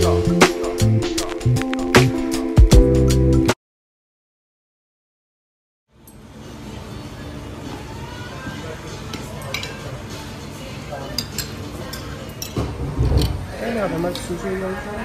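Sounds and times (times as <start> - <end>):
cutlery and crockery clinking: 9.0 - 10.0, 10.9 - 13.4.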